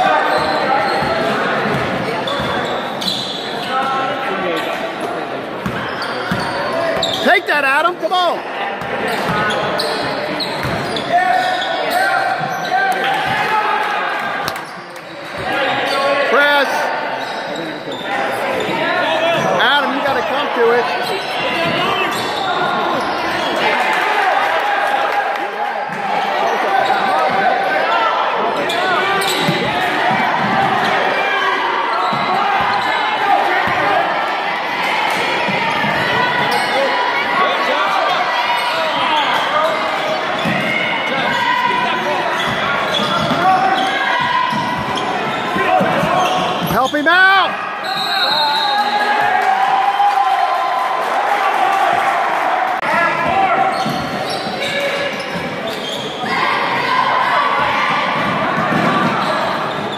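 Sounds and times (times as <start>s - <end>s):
shouts and chatter: 0.0s - 59.9s
referee's whistle blast: 47.8s - 49.0s.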